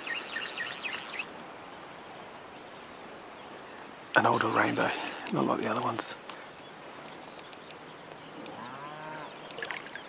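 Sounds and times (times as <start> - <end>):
distant cow mooing: 8.5 - 9.4.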